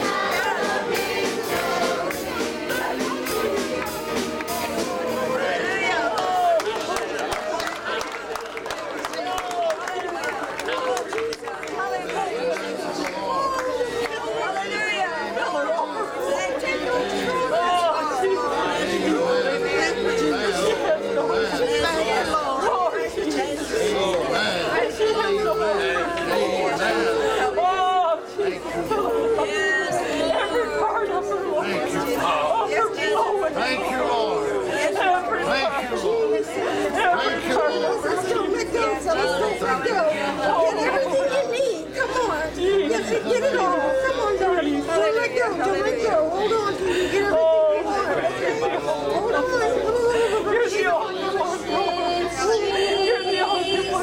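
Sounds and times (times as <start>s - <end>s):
congregation praying aloud: 0.0s - 54.0s.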